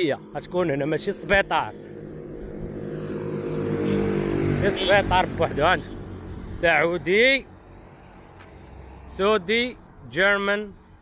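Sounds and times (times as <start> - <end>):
vehicle engine running: 0.2 - 7.2.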